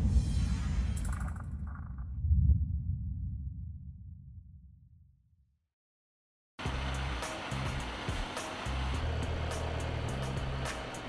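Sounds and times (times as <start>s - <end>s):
deep low rumble: 0.0s - 5.2s.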